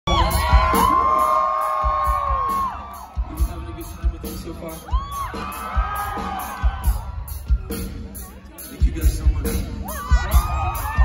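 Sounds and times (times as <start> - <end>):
crowd cheering and whooping: 0.1 - 8.6, 9.7 - 11.0
live rock band playing: 0.1 - 11.0.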